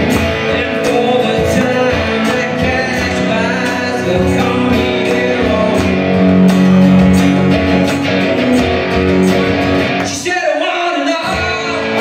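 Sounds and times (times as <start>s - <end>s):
acoustic and electric guitars strumming: 0.0s - 12.0s.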